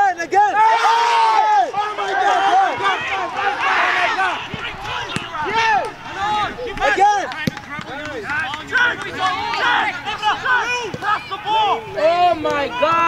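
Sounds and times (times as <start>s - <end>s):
people shouting: 0.0s - 13.0s.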